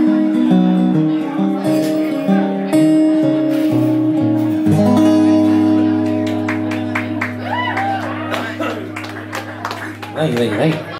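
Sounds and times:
acoustic guitar: 0.0s - 10.9s.

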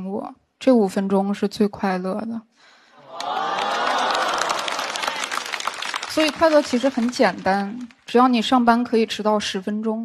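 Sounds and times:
audience laughing: 3.0s - 5.4s
audience clapping: 3.0s - 8.2s.

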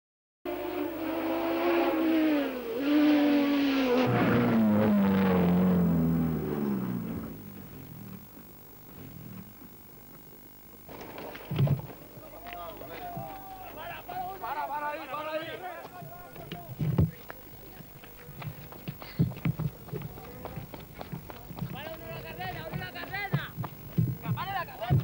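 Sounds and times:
race car engine running hard: 0.5s - 10.9s.

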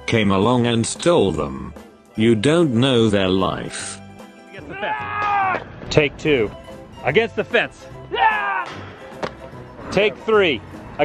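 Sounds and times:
background music: 0.0s - 11.0s
person shouting: 4.6s - 5.7s, 8.1s - 8.7s.

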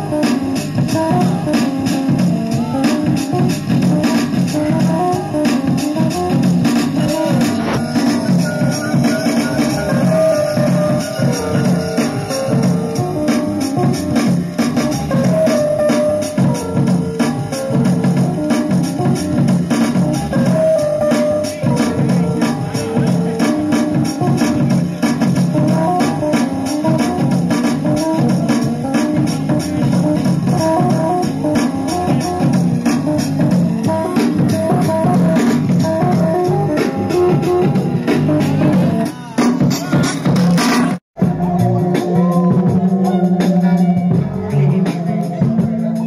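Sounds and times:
drum pattern: 0.0s - 46.0s
hip-hop beat: 0.0s - 46.0s
sampled keyboard loop: 0.0s - 46.0s.

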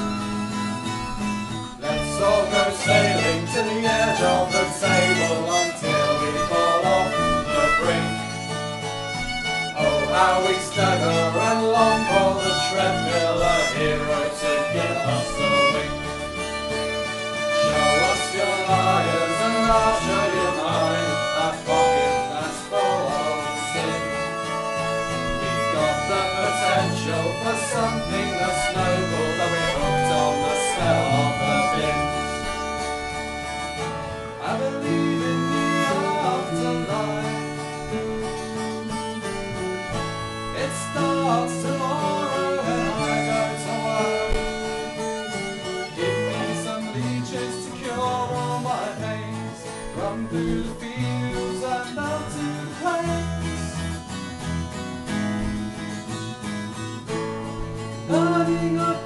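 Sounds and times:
acoustic guitar strumming: 0.0s - 59.0s
bass guitar: 0.0s - 59.0s
violin: 0.0s - 59.0s.

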